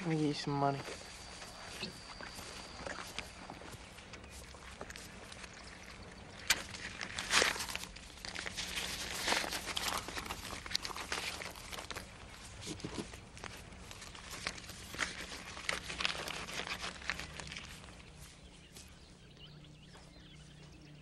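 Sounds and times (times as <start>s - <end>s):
paper banknotes rustling: 6.4s - 18.6s.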